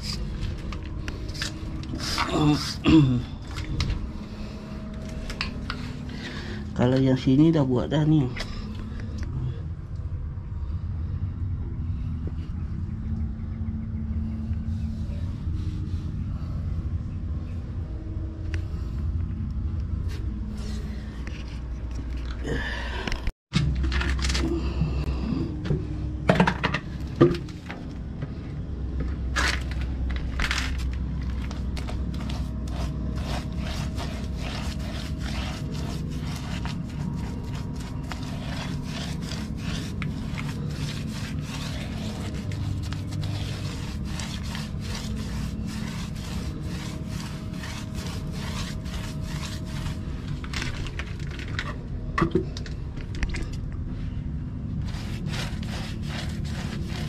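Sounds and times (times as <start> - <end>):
steady low hum: 0.0 - 57.0
steel scraper on concrete: 31.8 - 50.0, 54.9 - 57.0.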